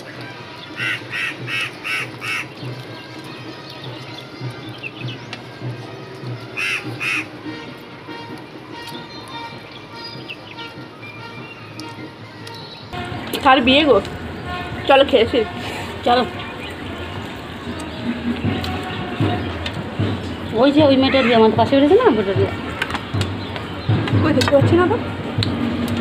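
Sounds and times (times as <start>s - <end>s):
background music: 0.0s - 26.0s.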